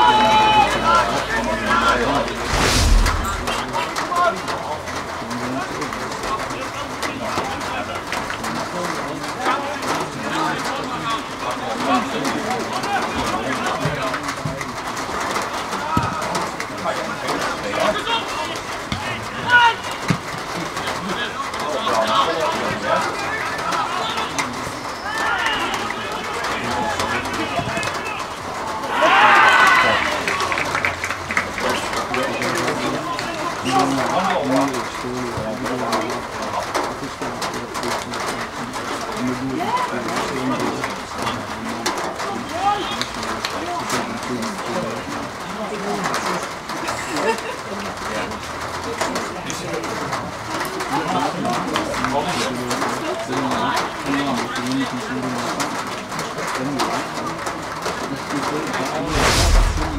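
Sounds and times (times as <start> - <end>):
players shouting: 0.0 - 4.5, 20.8 - 30.6
loud burst of shouting: 28.0 - 30.3.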